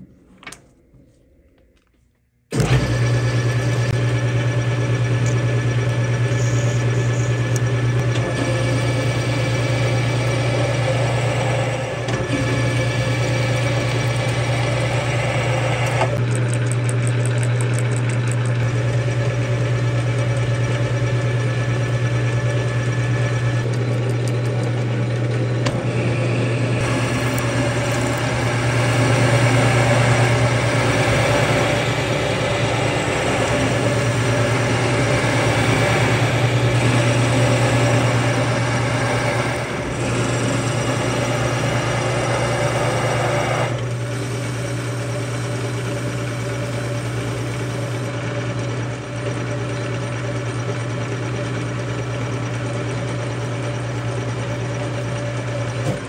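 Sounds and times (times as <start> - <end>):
metal lathe humming: 2.5 - 56.0.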